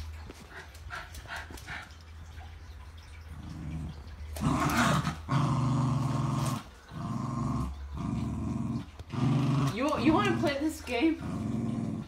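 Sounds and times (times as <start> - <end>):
small dog growling: 3.4 - 12.0.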